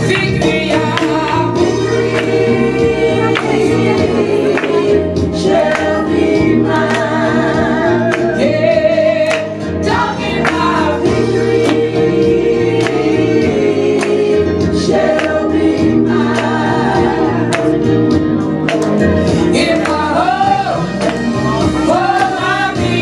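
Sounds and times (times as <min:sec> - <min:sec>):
bass line: 0:00.0 - 0:23.0
congregation singing gospel song: 0:00.0 - 0:23.0.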